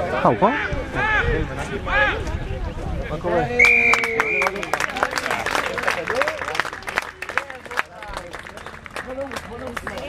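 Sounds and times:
spectators clapping: 3.6s - 10.0s.

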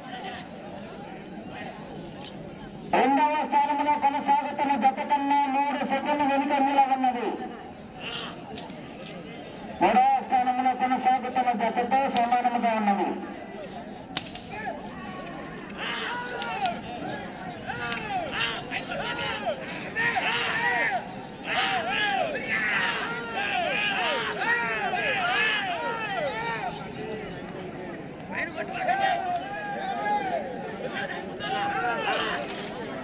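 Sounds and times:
sharp cracks: 14.1s - 14.8s
men shouting: 14.5s - 26.8s, 28.7s - 32.6s.

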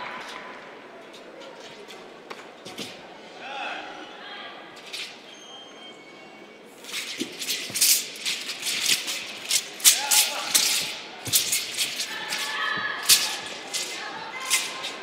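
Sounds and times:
sword rattling and swishing: 4.8s - 5.2s, 6.8s - 15.0s.

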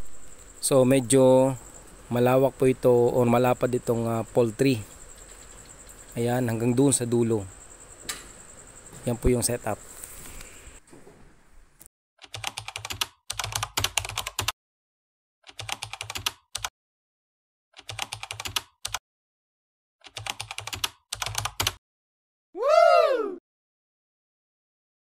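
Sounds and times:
rapid keyboard key clicks: 12.2s - 14.5s, 15.5s - 16.7s, 17.8s - 19.0s, 20.0s - 21.8s.

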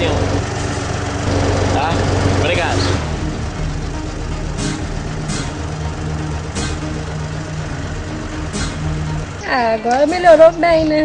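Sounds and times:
truck diesel engine idling: 0.0s - 11.0s.

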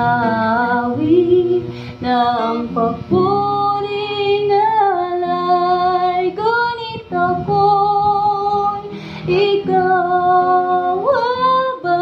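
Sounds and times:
strummed acoustic guitar: 0.0s - 12.0s
woman singing slow song: 0.0s - 12.0s.

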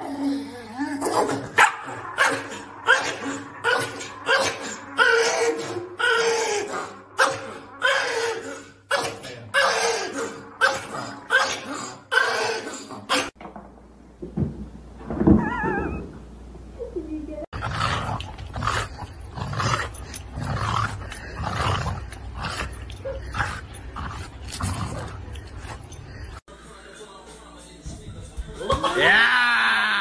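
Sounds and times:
dog barking: 1.6s - 3.0s.

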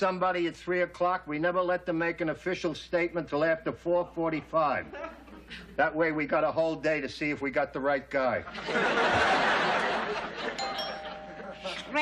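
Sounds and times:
two-note doorbell chime: 10.6s - 12.0s.

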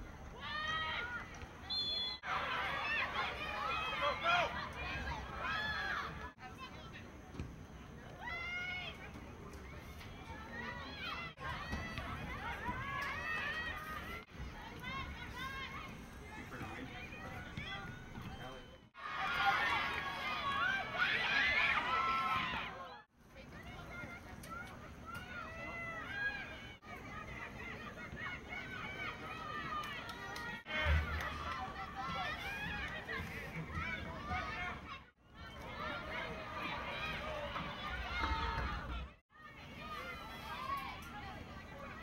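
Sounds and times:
voices calling and talking: 0.0s - 42.0s.

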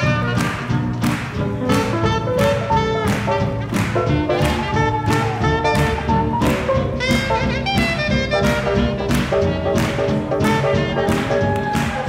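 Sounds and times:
swing jazz with brass: 0.0s - 12.0s.

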